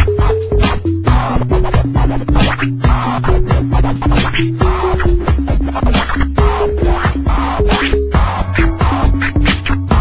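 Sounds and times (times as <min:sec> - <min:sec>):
melody of short notes: 0:00.0 - 0:09.4
electronic beat: 0:00.0 - 0:10.0
vinyl record scratching: 0:00.0 - 0:10.0.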